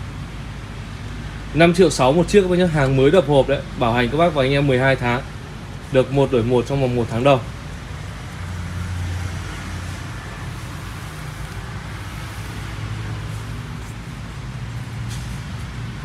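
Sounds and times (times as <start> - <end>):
road traffic rumble: 0.0 - 16.0.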